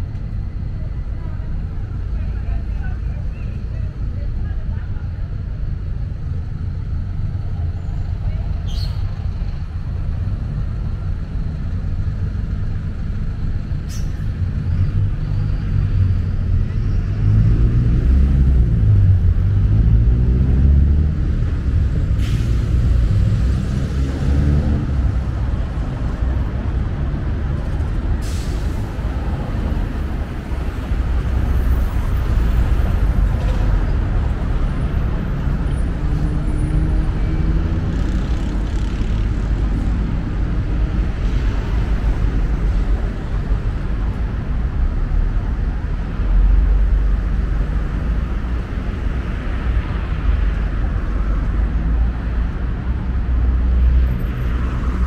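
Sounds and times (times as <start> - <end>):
car and bus engines passing: 0.0 - 55.0
heavy engine rising in pitch: 27.8 - 38.2.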